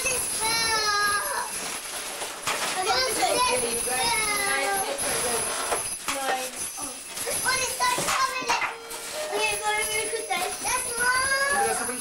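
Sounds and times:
children calling and chattering: 0.0 - 1.7, 2.5 - 12.0.

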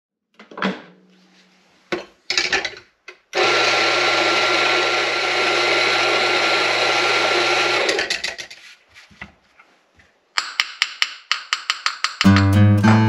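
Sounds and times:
coffee grinder motor whirring: 3.4 - 8.2.

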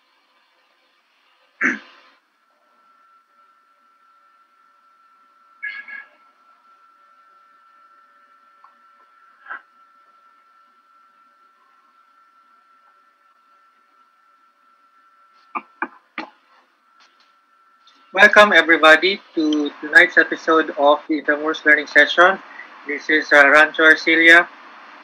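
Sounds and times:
faint steady whine: 0.0 - 25.0.

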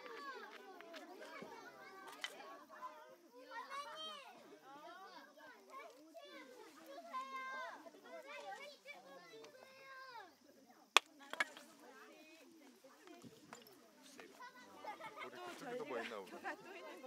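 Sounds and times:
children chattering and calling: 0.0 - 17.0.

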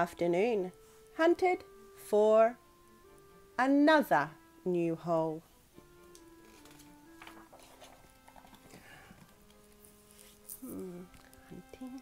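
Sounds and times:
soft background music: 0.0 - 12.0
book page turning: 6.2 - 11.4.

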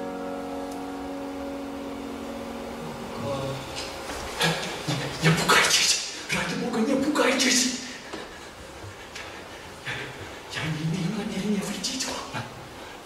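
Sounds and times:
piano chord: 0.0 - 4.8
muffled vocal sounds: 2.8 - 8.0, 9.8 - 12.8.

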